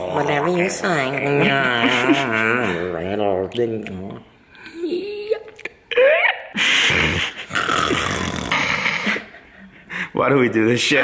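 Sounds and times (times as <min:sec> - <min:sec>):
breathy wheezing laughter: 0:05.9 - 0:10.1
quiet breaths: 0:08.7 - 0:10.3.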